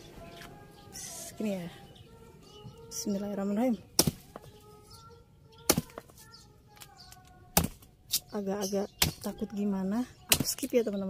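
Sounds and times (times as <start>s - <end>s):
machete chopping into tree trunk: 4.0s - 4.3s, 7.6s - 8.2s, 9.0s - 9.3s.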